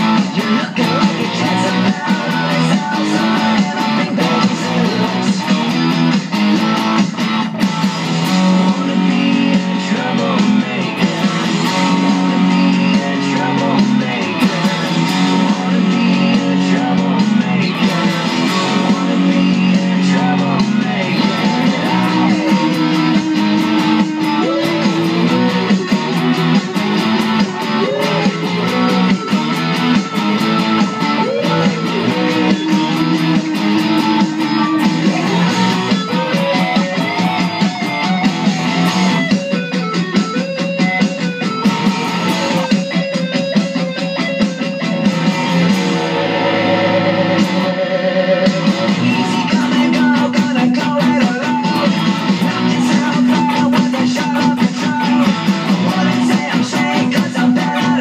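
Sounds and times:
drums: 0:00.0 - 0:58.0
electric guitar strumming chords: 0:00.0 - 0:58.0
rock music: 0:00.0 - 0:58.0
pitch-bending melody line: 0:45.0 - 0:50.2.

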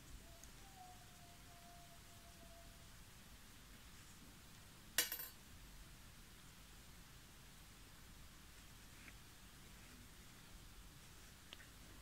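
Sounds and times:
metallic clink: 0:05.0 - 0:05.4.

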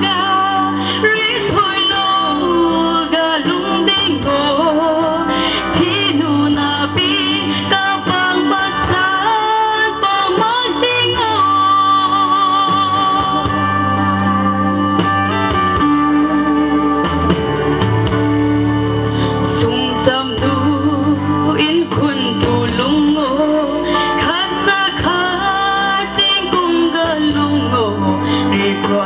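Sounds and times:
instrumental accompaniment: 0:00.0 - 0:29.0
woman singing into a microphone: 0:00.0 - 0:29.0.

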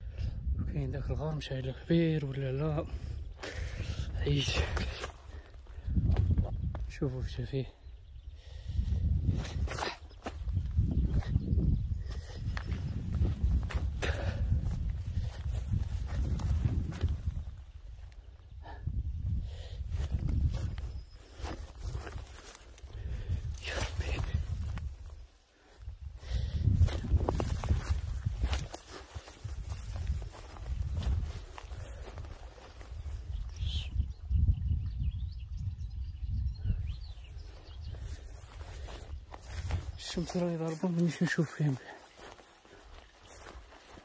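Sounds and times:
wind rumble on microphone: 0:00.0 - 0:40.5
footsteps through brush: 0:02.9 - 0:07.6, 0:08.6 - 0:18.7, 0:19.3 - 0:34.3, 0:36.9 - 0:44.0.

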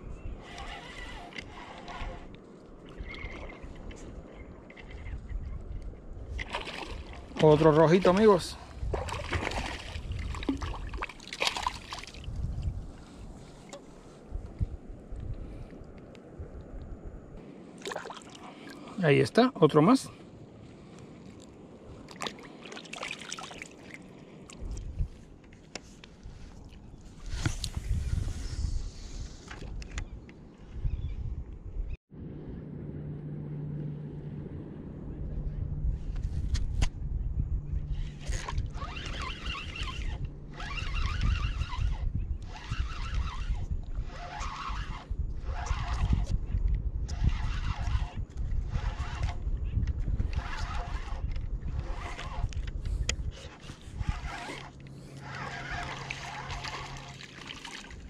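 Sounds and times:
wind noise: 0:00.0 - 0:18.6, 0:24.5 - 0:58.0
low rumbling water: 0:00.0 - 0:19.3, 0:20.0 - 0:30.6, 0:31.4 - 0:58.0
fishing reel whirring: 0:00.4 - 0:02.4, 0:37.9 - 0:46.3, 0:47.1 - 0:49.5, 0:50.2 - 0:57.5.

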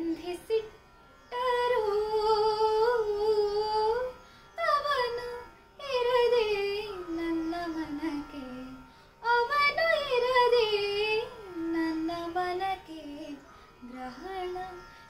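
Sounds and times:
woman singing: 0:00.0 - 0:15.0.

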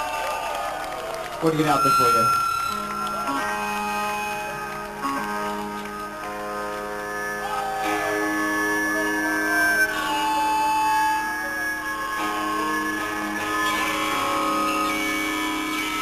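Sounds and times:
electric guitars ringing notes: 0:01.4 - 0:16.0.

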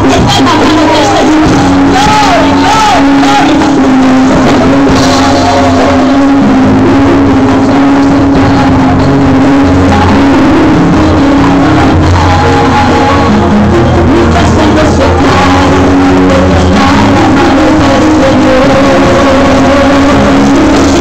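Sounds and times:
drums: 0:00.0 - 0:21.0
electric bass: 0:00.0 - 0:21.0
electric guitar: 0:00.0 - 0:21.0.

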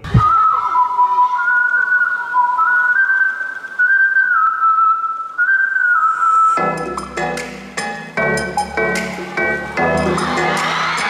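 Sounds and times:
whistled melody: 0:00.1 - 0:11.0.

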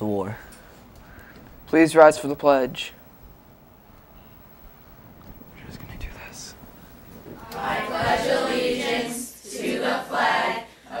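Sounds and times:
whispered voices: 0:05.3 - 0:09.2
soft thump: 0:07.2 - 0:08.3.

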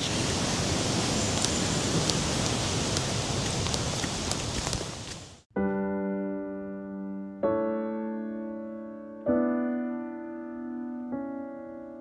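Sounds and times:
rushing river and waterfall: 0:00.0 - 0:05.4
piano tune: 0:05.5 - 0:12.0.

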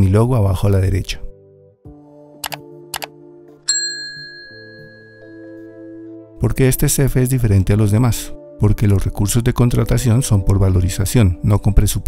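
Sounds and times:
soft background music: 0:00.0 - 0:12.0
mouse clicks: 0:02.4 - 0:03.1
notification bell ding: 0:03.7 - 0:05.7.

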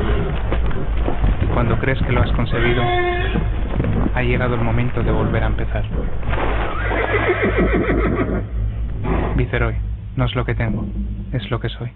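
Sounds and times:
low steady hum: 0:00.0 - 0:11.9
horse whinnying: 0:06.4 - 0:08.6.

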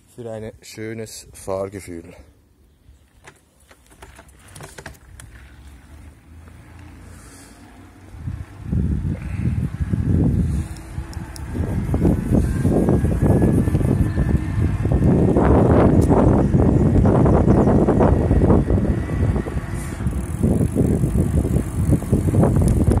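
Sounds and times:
knobby tyres rolling on asphalt: 0:03.0 - 0:23.0
wind rumbling on microphone: 0:04.6 - 0:23.0
faint rising whine: 0:05.4 - 0:23.0.

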